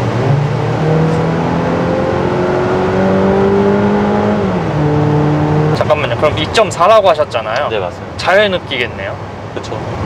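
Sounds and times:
car engine accelerating: 0.0s - 6.3s.

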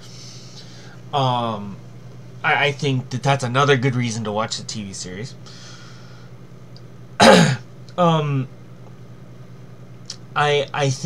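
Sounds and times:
faint low hum: 0.0s - 11.0s
man clearing his throat: 7.2s - 7.7s.

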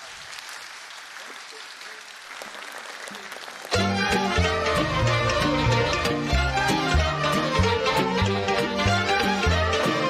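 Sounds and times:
audience applauding: 0.0s - 10.0s
folk orchestra with violins: 3.7s - 10.0s.

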